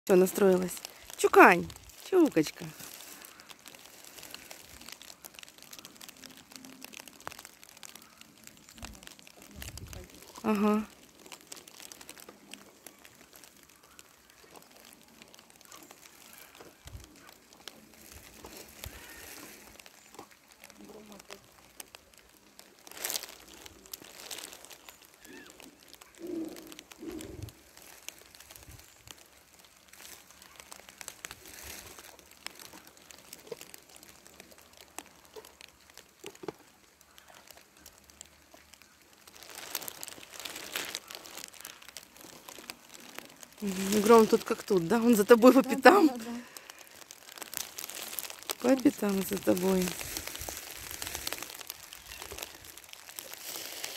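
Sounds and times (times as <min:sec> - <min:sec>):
dry grass rustling underfoot: 0:00.1 - 0:53.9.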